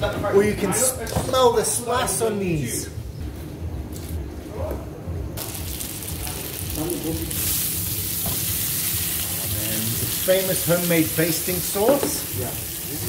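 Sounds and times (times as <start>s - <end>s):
chicken sizzling in hot oil: 5.4s - 13.0s.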